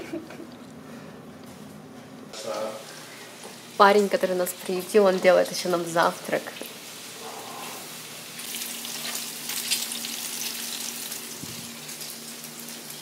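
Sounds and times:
food sizzling in a frying pan: 2.4s - 13.0s.

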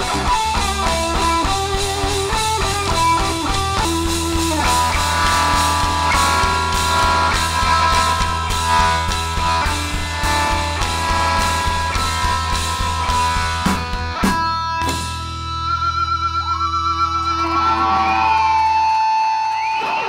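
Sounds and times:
guitars ringing held notes: 0.0s - 19.6s
live rock band playing: 0.0s - 20.0s.

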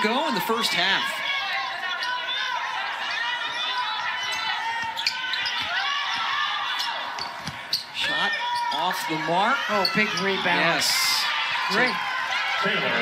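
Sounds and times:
voices: 0.0s - 13.0s
sneaker squeaks: 3.0s - 9.1s, 9.7s - 10.8s.

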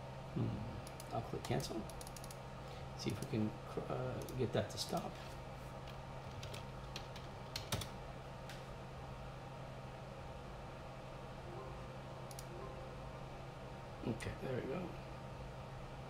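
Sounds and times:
steady low hum: 0.0s - 16.0s
keyboard keystrokes: 12.3s - 12.5s
mouse clicks: 12.3s - 12.5s.

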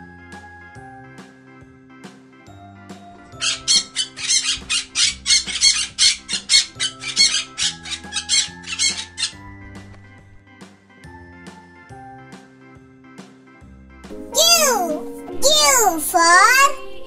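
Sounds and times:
background music: 0.0s - 17.0s
parakeet squawking: 3.4s - 9.5s.

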